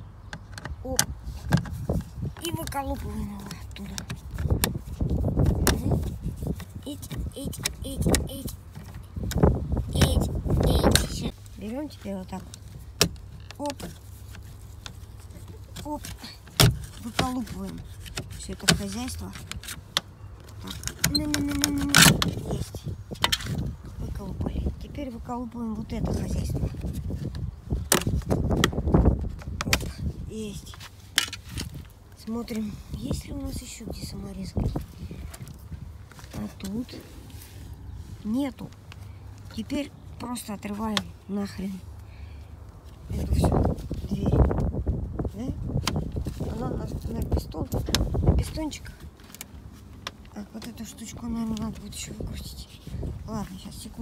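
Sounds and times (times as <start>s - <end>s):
handling noise: 0.2s - 24.2s.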